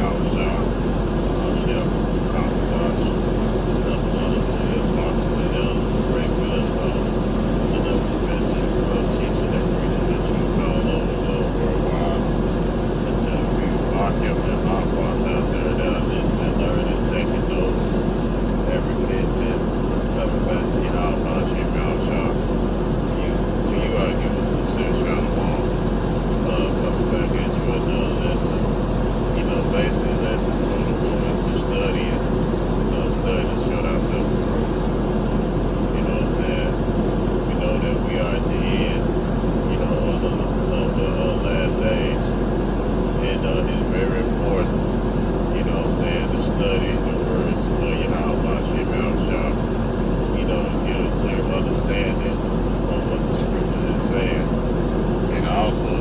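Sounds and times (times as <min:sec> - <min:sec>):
vehicle engine and road drone: 0:00.0 - 0:56.0.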